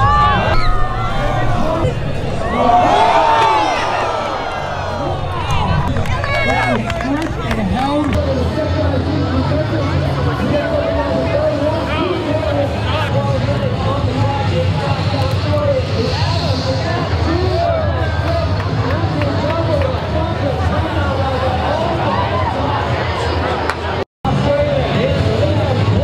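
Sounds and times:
spectators shouting and whooping: 0.0 - 8.2, 16.0 - 19.6, 20.7 - 23.7
voice with gliding pitch: 4.0 - 17.3.

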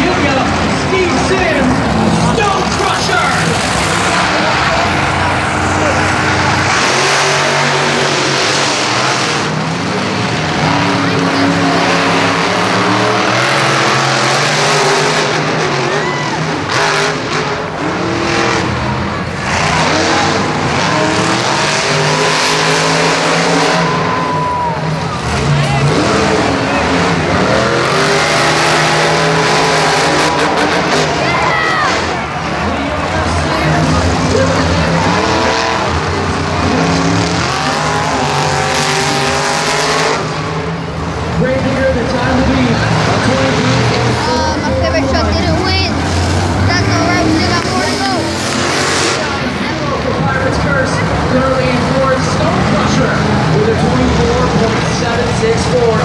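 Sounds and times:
monster truck engines revving: 0.0 - 56.0
voices: 18.6 - 39.3, 40.5 - 56.0.

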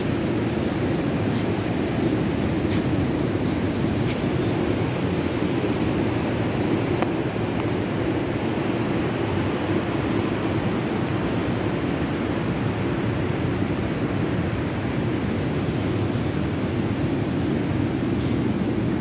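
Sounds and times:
ocean surf rushing: 0.0 - 19.0
wind: 0.0 - 19.0.

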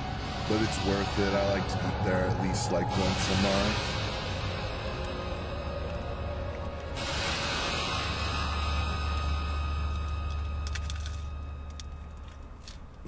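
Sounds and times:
vehicle passing rumble: 0.0 - 13.0
sharp crackles: 3.1 - 13.0.

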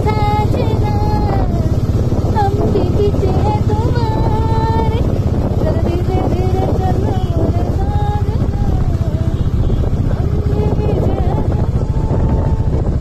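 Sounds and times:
motorcycle engine running: 0.0 - 13.0
wind rumbling on microphone: 0.0 - 13.0.

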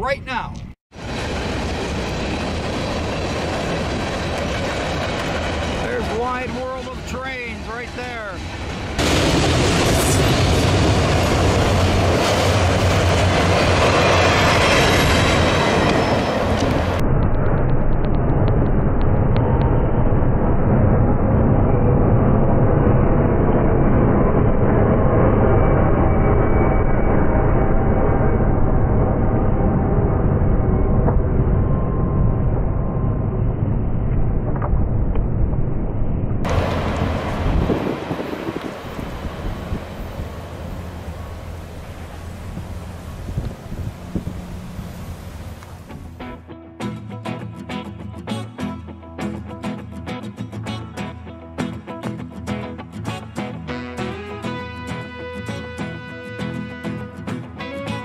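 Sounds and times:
steel train wheels rumbling on rail: 1.0 - 18.8, 36.5 - 46.2.

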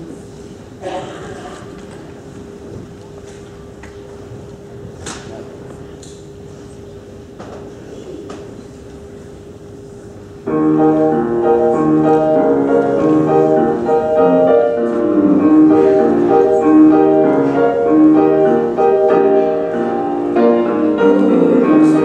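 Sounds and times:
piano playing chords: 10.4 - 22.0.

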